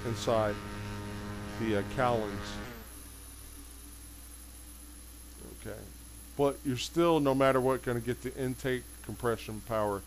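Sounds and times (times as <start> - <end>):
turboprop engines droning: 0.0 - 3.1
high-pitched turbine whine: 0.0 - 10.0.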